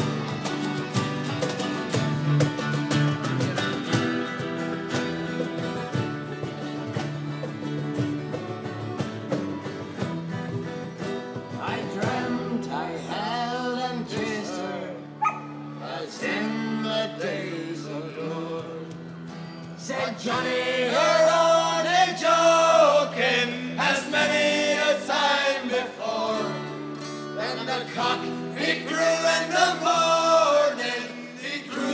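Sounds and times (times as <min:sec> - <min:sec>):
cajon beat: 0:00.0 - 0:12.7
strummed guitars: 0:00.0 - 0:31.9.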